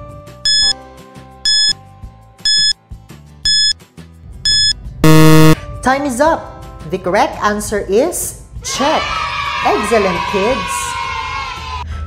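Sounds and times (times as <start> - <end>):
low buzzer: 0.5 - 0.7, 1.5 - 1.7, 2.5 - 2.7, 3.5 - 3.7, 4.5 - 5.6
short high beeps: 0.5 - 0.7, 1.5 - 1.7, 2.5 - 2.7, 3.5 - 3.7, 4.5 - 5.6
faint background music: 5.7 - 12.0.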